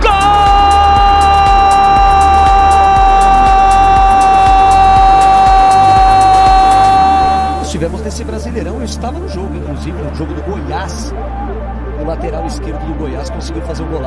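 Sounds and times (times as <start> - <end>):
pulsing bass beat: 0.0 - 14.0.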